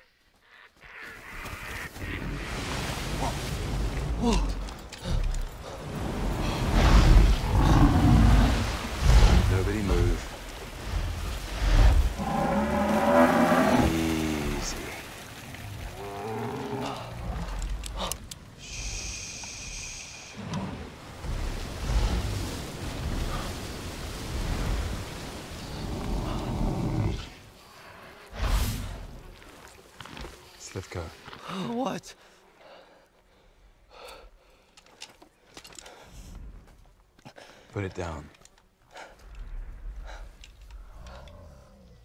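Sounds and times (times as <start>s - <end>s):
wash of water-like noise: 2.3s - 30.7s.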